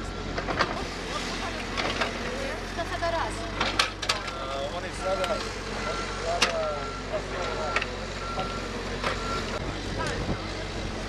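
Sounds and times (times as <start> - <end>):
diesel engine running: 0.0 - 11.0
back-up alarm beeping: 4.2 - 9.6.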